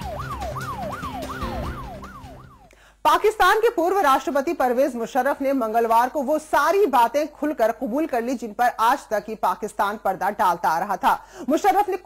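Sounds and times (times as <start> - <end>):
electronic siren sweeps: 0.0 - 2.7
low steady music tone: 0.0 - 2.8.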